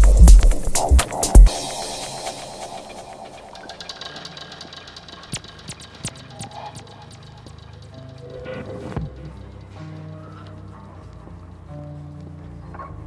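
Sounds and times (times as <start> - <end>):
minimal electronic music: 0.0 - 13.0.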